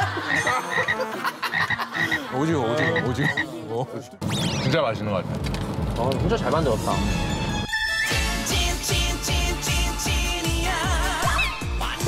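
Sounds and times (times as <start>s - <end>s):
frog croaking: 2.8s - 3.4s.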